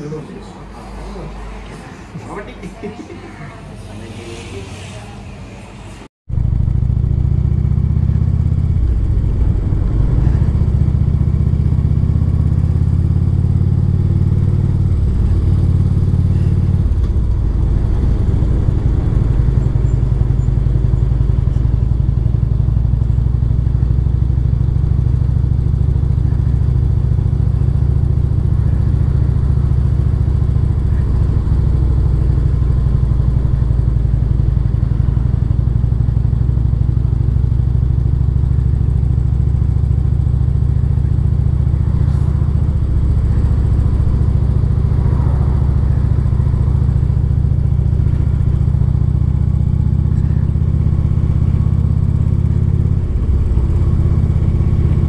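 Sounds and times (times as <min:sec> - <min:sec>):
motorcycle engine rumble: 0:06.3 - 0:55.0.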